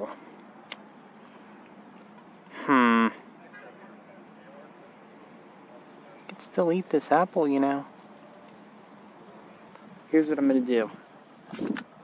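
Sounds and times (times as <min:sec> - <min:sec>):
man's short wordless vocal sound: 0:02.5 - 0:03.3.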